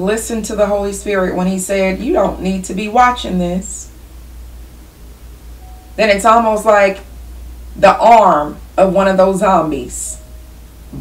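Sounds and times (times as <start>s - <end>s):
low steady hum: 0.0s - 11.0s
faint hiss: 0.5s - 11.0s.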